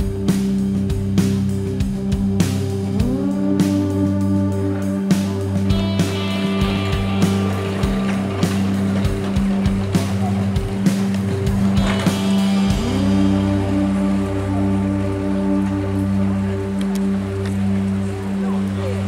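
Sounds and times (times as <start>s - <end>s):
instrumental background music: 0.0s - 19.0s.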